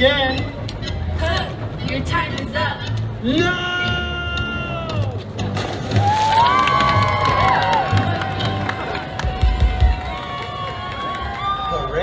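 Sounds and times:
music: 0.0 - 11.7
crowd cheering: 5.9 - 12.0.

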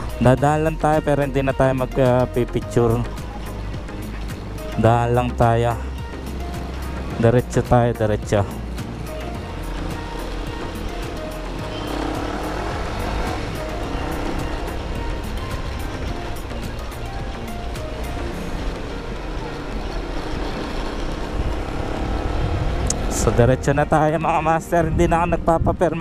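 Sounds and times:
motorcycle engine running: 0.0 - 25.5
wind and road noise: 0.0 - 26.0.

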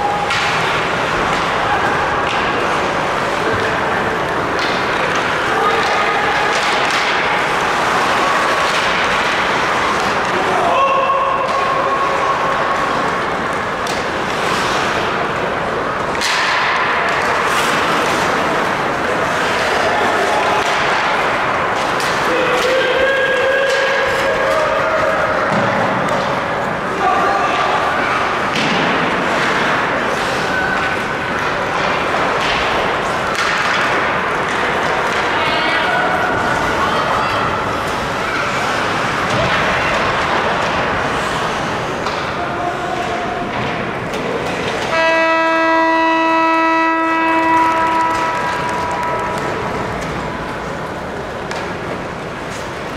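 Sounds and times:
crowd noise: 0.0 - 52.9
skates on ice: 0.0 - 52.9
arena horn blast: 44.9 - 49.3.

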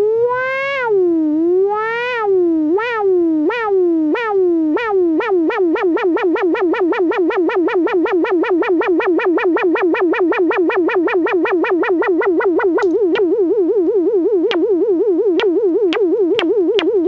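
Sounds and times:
warbling buzzy synthesizer tone: 0.0 - 17.0
sharp click: 12.8 - 13.3.

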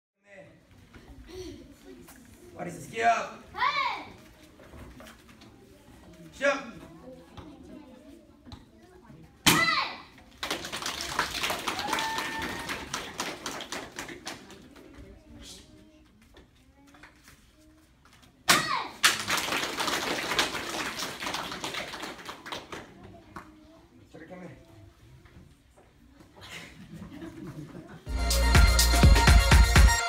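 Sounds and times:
person shouting kiai: 9.5 - 10.0, 18.5 - 19.0
audience applause: 10.6 - 14.3.

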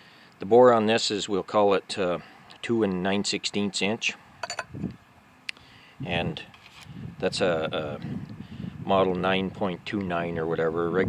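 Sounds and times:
metal sleeve clinking on engine block: 4.4 - 4.7.

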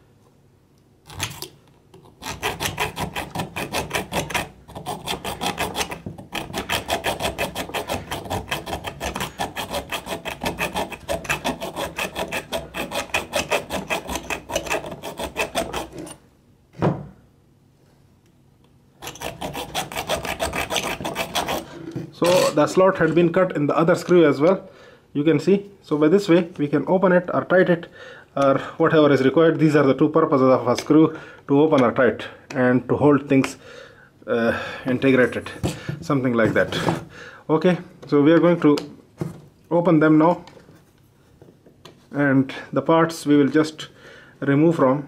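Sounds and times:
hacksaw cutting metal: 2.2 - 16.2, 19.0 - 22.6.

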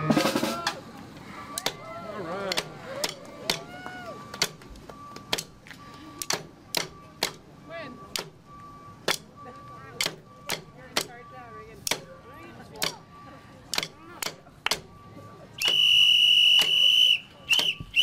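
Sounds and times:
people talking in background: 0.1 - 18.0
drumsticks clicking together: 13.7 - 14.9.

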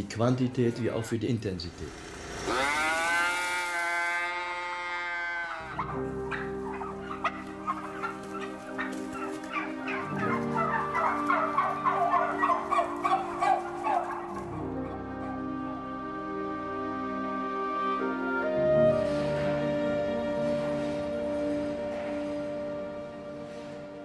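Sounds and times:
soft sustained music notes: 0.0 - 24.0
turkeys gobbling: 1.9 - 16.2
long drawn-out turkey cry: 2.0 - 17.0.

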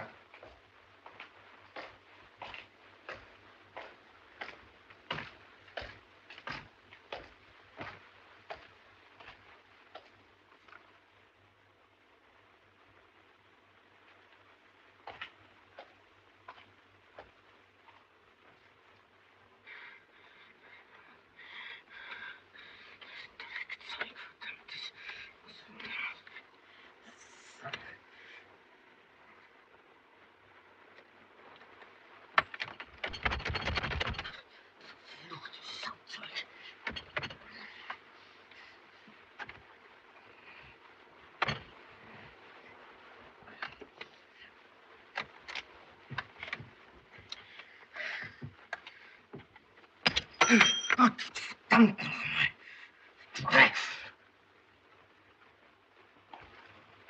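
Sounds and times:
hard-soled footsteps on floor: 0.0 - 10.9
clicks with metallic ring: 50.1 - 51.0.

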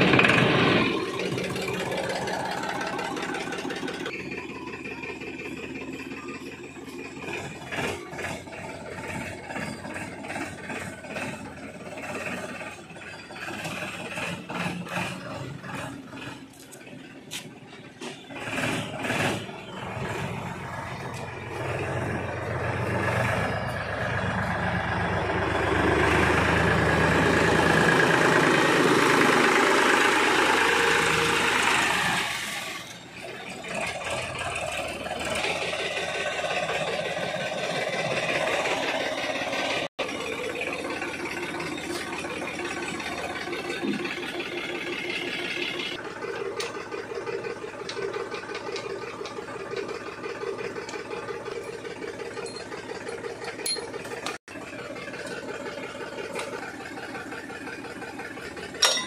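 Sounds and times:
engine knocks and rattles: 0.0 - 59.0
tractor diesel engine running: 0.0 - 59.0.

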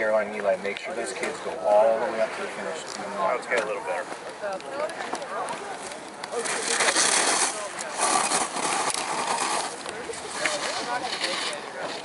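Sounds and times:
skis scraping on hard snow: 5.0 - 12.0.

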